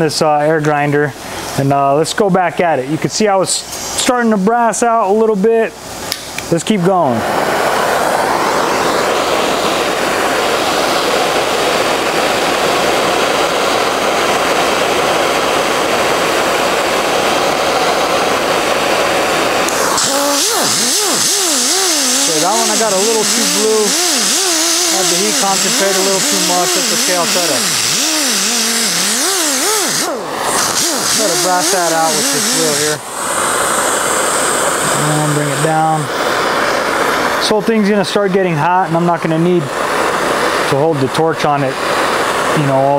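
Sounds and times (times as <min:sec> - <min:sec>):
gas torch hissing: 0:03.5 - 0:42.9
die grinder whining: 0:06.9 - 0:37.9, 0:38.6 - 0:42.9.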